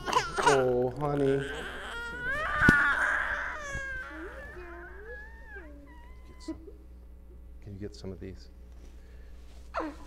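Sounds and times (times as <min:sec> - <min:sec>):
baby crying and whimpering: 0:00.0 - 0:06.7.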